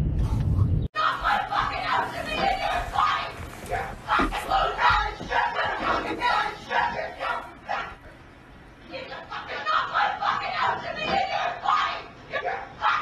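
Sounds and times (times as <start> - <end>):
voices yelling and shouting: 1.0 - 8.1, 8.8 - 13.0.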